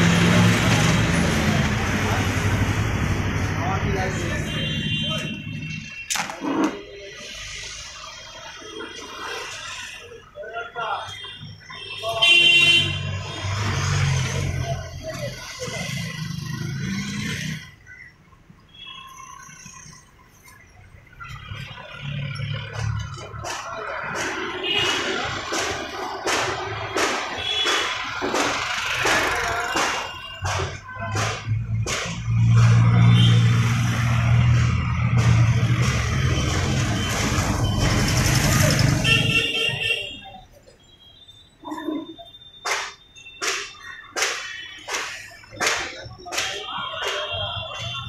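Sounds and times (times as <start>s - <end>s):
street noise: 0.0s - 48.0s.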